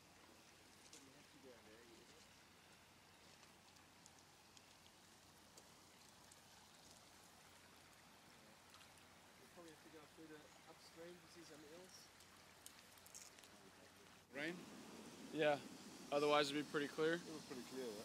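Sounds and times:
stream running over rocks: 0.0 - 18.0.

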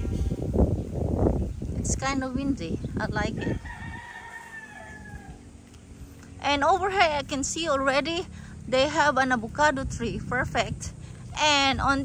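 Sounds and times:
wind rumble on microphone: 0.0 - 12.0
rooster crowing: 3.4 - 5.6.

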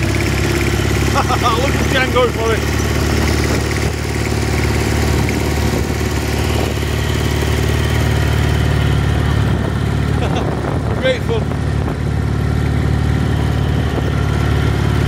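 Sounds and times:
small vehicle engine running: 0.0 - 15.0
wind rushing noise: 10.4 - 12.1.

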